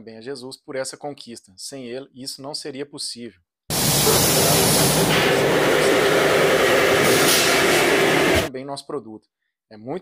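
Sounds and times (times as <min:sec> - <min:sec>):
workshop machinery running: 0:03.7 - 0:08.5.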